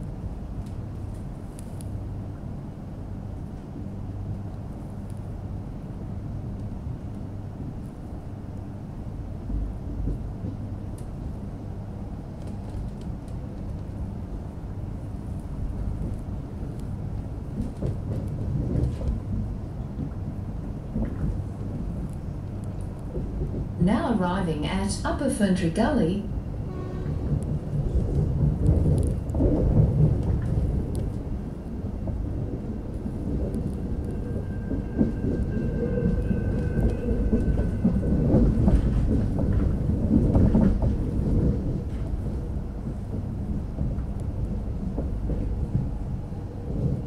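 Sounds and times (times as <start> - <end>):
train rumbling: 0.0 - 47.0.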